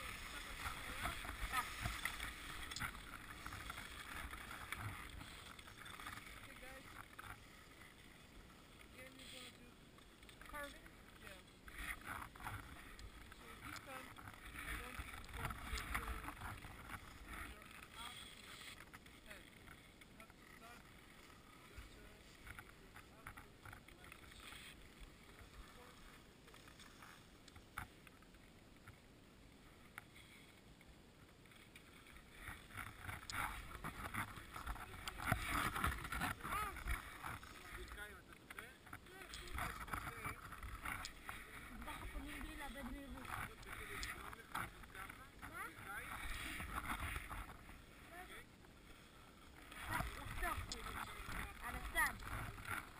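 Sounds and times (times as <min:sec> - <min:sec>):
skis scraping over snow: 0:00.0 - 0:28.4, 0:31.3 - 0:52.9.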